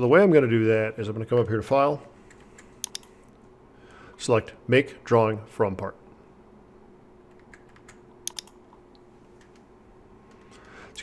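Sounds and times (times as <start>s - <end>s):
computer mouse button click: 8.3s - 8.6s.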